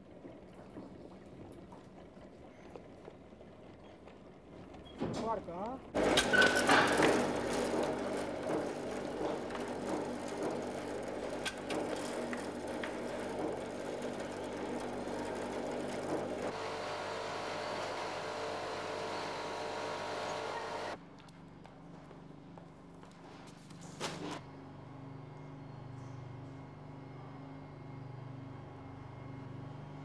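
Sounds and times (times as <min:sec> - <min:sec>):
machinery humming: 0:06.0 - 0:21.0
different steady machine tone: 0:12.0 - 0:21.0.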